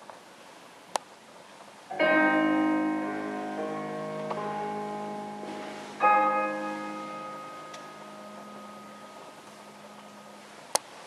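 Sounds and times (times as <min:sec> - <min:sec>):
room hiss: 0:00.0 - 0:11.0
children's choir with piano: 0:01.9 - 0:10.7.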